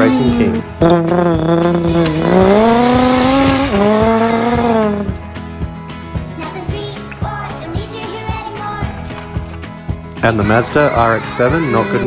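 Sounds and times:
race car engine accelerating: 0.8s - 5.2s.

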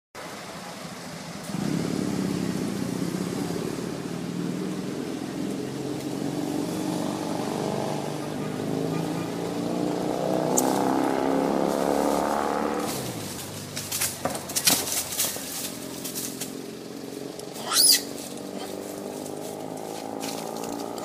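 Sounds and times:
motor engine running: 8.2s - 21.0s.

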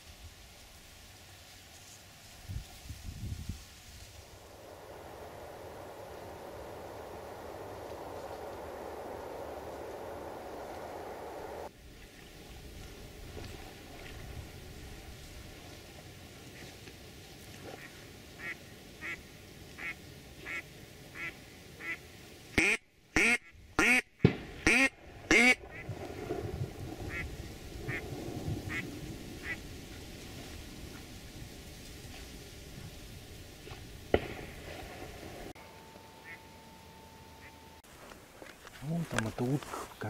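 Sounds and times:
duck quacking: 17.8s - 19.2s, 19.8s - 20.6s, 21.2s - 22.0s, 22.6s - 25.8s.

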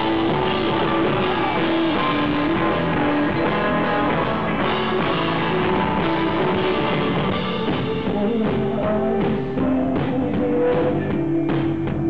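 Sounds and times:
electric guitars: 0.0s - 12.0s
live rock band: 0.0s - 12.0s.

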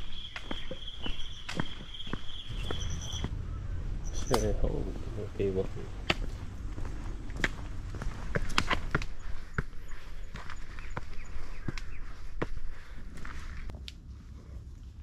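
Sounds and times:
footsteps on rocky trail: 0.0s - 3.4s, 5.8s - 13.9s.

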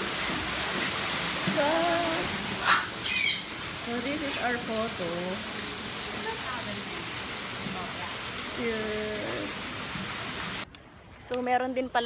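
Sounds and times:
parrot squawk: 2.6s - 3.6s.

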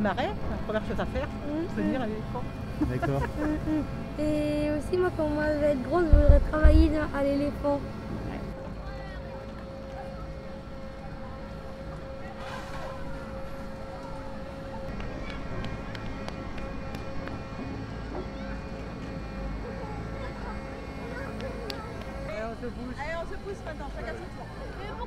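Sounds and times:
machinery drone and whine: 0.0s - 25.0s.

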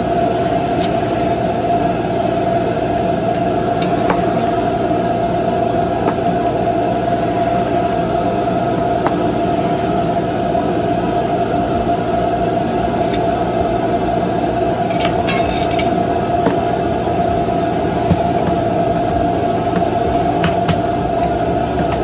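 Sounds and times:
machine drone whine: 0.0s - 22.0s.

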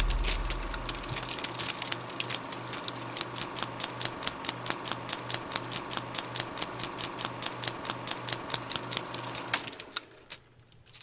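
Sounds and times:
projector hum: 0.0s - 8.5s
film projector clicking: 0.0s - 10.9s.

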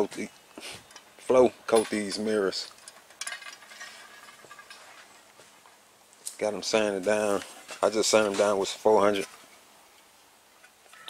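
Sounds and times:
rustling: 0.4s - 11.0s
soft clinks: 0.9s - 5.2s.

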